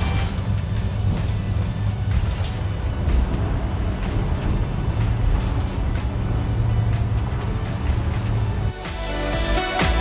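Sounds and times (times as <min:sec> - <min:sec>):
bus engine rumble: 0:00.0 - 0:09.7
background music: 0:00.0 - 0:10.0.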